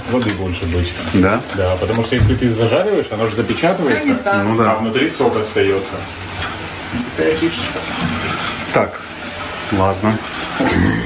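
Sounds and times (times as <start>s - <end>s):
chicken sizzling in a pan: 2.5s - 10.7s.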